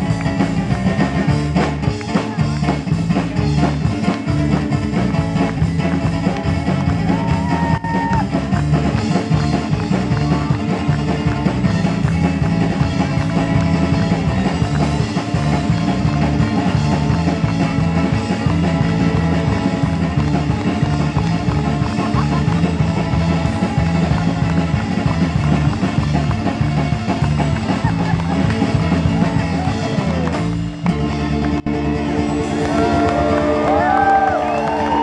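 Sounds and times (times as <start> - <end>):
drum kit: 0.0 - 35.0
electric bass: 0.0 - 35.0
amplified ukulele: 8.5 - 35.0.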